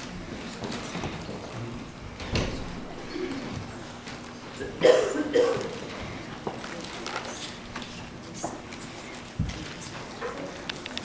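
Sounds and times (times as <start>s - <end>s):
children shuffling: 0.0s - 10.7s.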